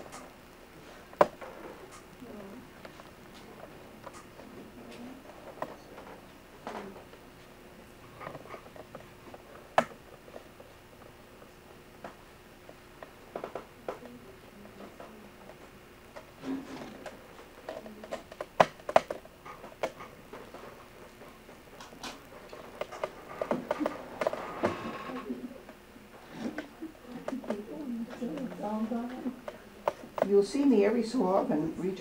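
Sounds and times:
sharp clicks and knocks: 16.1s - 20.7s.

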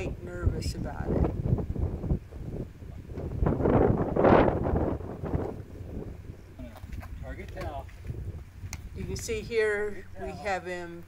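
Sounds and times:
wind gusting on microphone: 0.0s - 11.0s.

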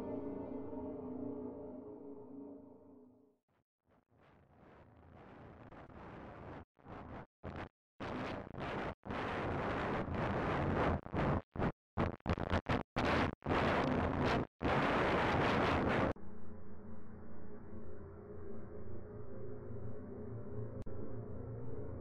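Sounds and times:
low ambient music drone: 0.0s - 3.1s.

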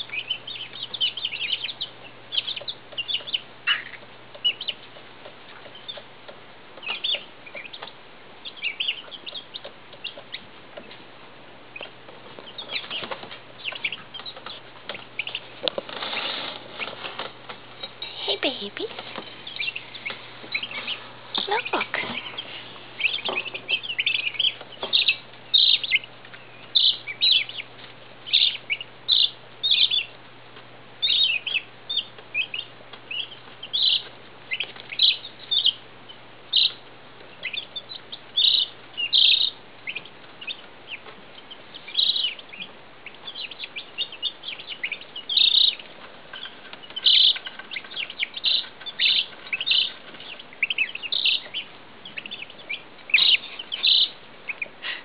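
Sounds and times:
chicks peeping: 0.0s - 55.0s.

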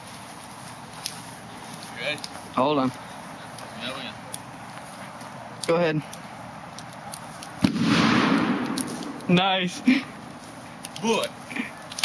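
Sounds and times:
sharp bang: 7.6s - 9.2s.

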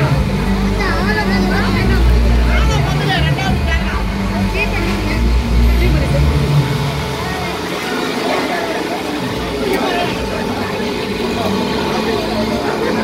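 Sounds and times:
low vehicle rumble: 0.0s - 13.0s
people talking at once: 0.0s - 13.0s
road traffic noise: 0.0s - 13.0s.

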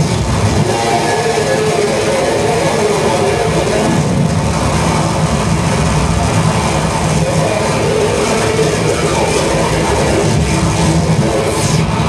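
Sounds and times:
distorted electronic noise music: 0.0s - 12.0s
low rumble: 0.0s - 12.0s.

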